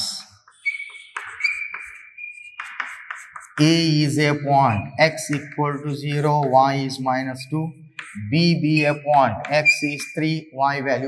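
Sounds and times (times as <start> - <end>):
chalk squeak: 0.0 - 6.5, 7.4 - 10.4
chalk scratching on blackboard: 0.0 - 10.4.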